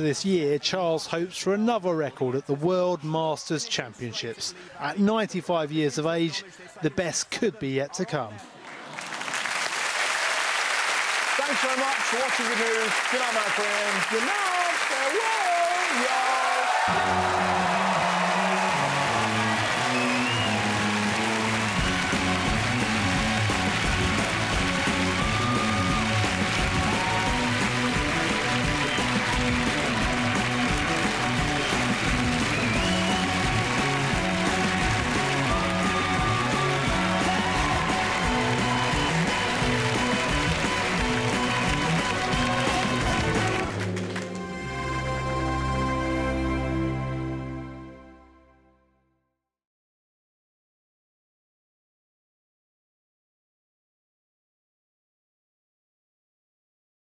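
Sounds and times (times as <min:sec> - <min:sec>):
audience applause: 0:08.6 - 0:44.5
theme music with steady beat: 0:19.2 - 0:48.6.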